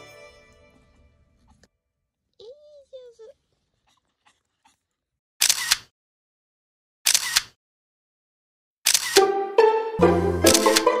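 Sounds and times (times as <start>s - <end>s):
camera shutter clicks: 5.4s - 5.9s, 7.1s - 7.6s, 8.8s - 9.2s, 10.4s - 10.9s.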